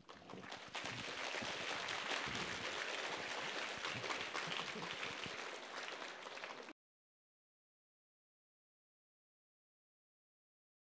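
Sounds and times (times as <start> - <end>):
audience applauding: 0.0 - 6.7.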